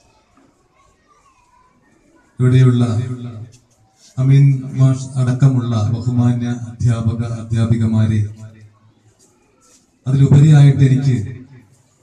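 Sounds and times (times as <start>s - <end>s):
distant children chattering: 0.0s - 12.0s
amplified speech: 4.2s - 8.6s, 10.1s - 11.6s.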